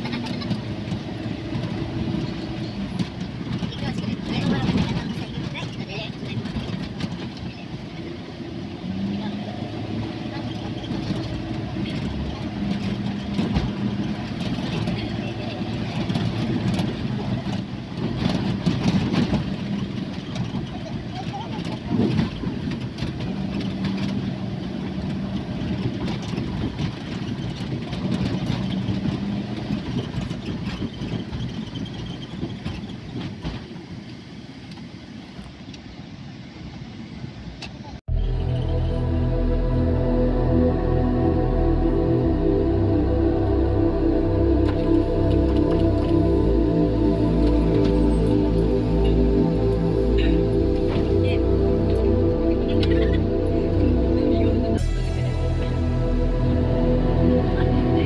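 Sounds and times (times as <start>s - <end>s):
van engine and road noise: 0.0s - 58.0s.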